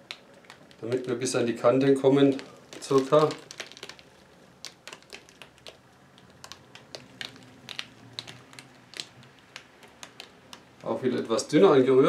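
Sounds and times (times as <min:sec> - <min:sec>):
light clicks and taps of canvas: 0:02.3 - 0:11.4.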